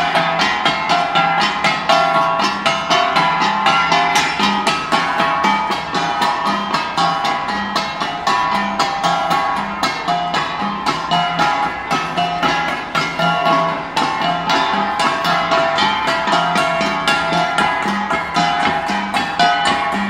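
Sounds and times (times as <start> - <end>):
bronze gongs ensemble: 0.0 - 20.0.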